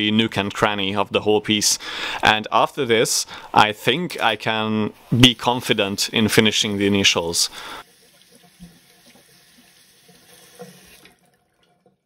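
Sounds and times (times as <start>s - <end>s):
tap water running into sink: 6.4s - 12.0s.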